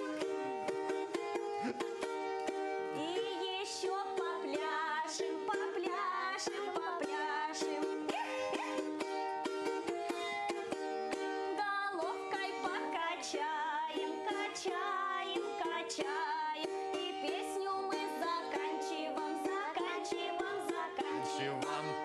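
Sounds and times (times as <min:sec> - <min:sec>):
balalaika strumming: 0:00.0 - 0:22.0
voices singing folk song: 0:02.9 - 0:09.0, 0:11.6 - 0:22.0.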